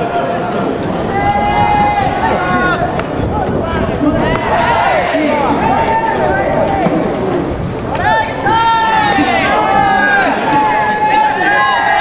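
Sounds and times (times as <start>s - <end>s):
young men shouting calls: 0.0s - 12.0s.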